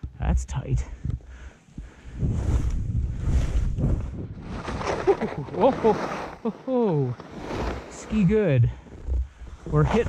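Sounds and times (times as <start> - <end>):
wind buffeting microphone: 1.0 - 4.8
sliding through snow: 2.2 - 10.0.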